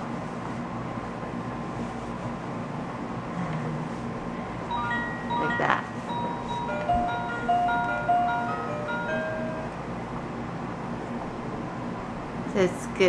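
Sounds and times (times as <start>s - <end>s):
toy electronic beeping melody: 4.7s - 9.6s.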